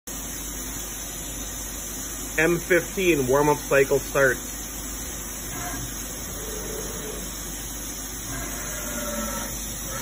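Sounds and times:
machine hum and hiss: 0:00.1 - 0:10.0.

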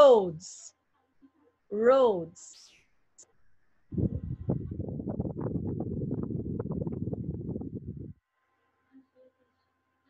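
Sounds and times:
low rumbling with crackles: 0:03.9 - 0:08.2.

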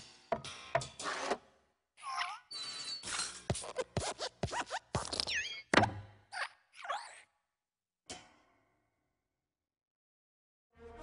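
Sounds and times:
rasping zipper-like strokes: 0:03.5 - 0:05.2.

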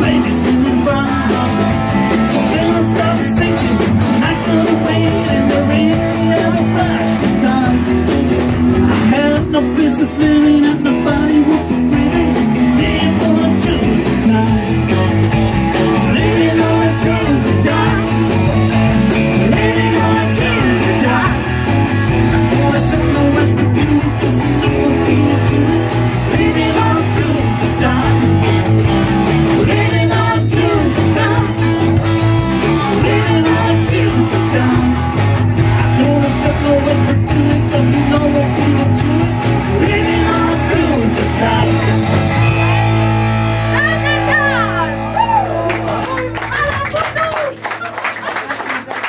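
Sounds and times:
person singing: 0:00.0 - 0:15.0, 0:15.7 - 0:42.3
rock band playing: 0:00.0 - 0:49.0.

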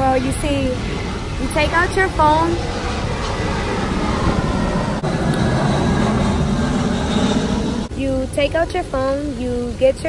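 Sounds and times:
loud low rumble: 0:00.0 - 0:08.7.

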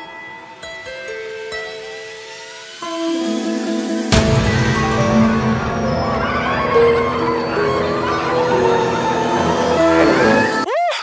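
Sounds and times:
rising and falling sweep: 0:00.9 - 0:10.7.

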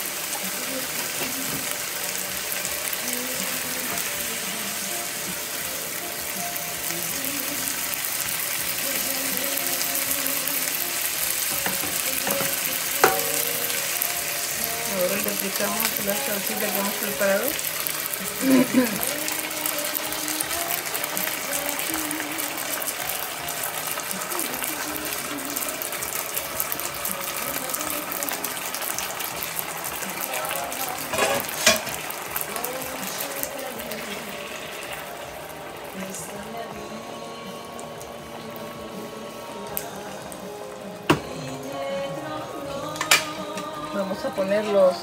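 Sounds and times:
food sizzling in a skillet: 0:00.0 - 0:45.0
spatula scraping pan: 0:31.1 - 0:31.9.

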